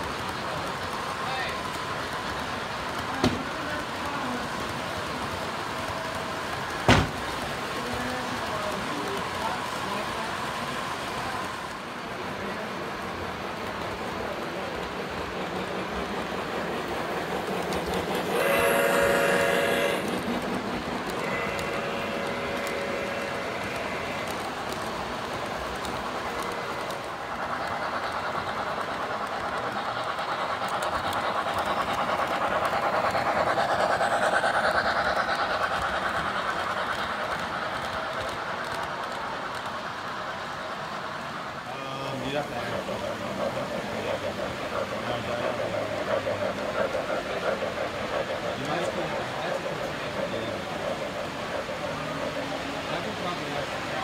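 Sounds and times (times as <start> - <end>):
model train motors humming: 0.0 - 54.0
wheels clicking over track joints: 0.0 - 54.0
model locomotive horn: 18.4 - 20.2, 21.2 - 24.3.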